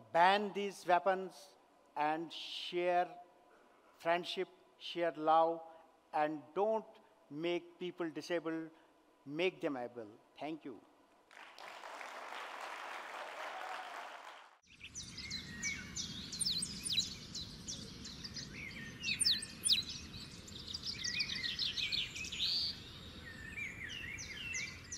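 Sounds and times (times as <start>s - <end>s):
audience applause: 11.3s - 14.6s
birds chirping and singing: 14.7s - 24.9s.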